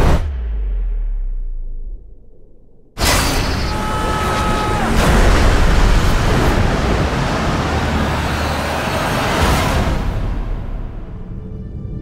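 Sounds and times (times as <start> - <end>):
heavy low rumble: 0.0 - 3.0
crashing waves: 3.0 - 10.8
heavy rain: 3.7 - 10.5.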